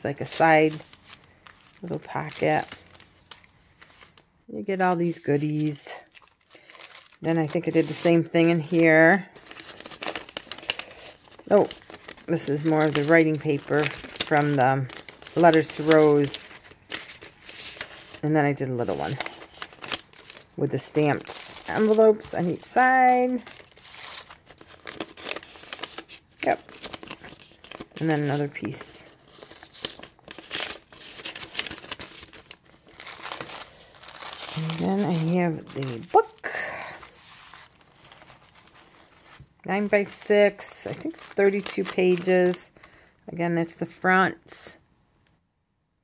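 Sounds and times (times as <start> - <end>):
paper rustling and crinkling: 0.0 - 4.3, 4.9 - 43.0.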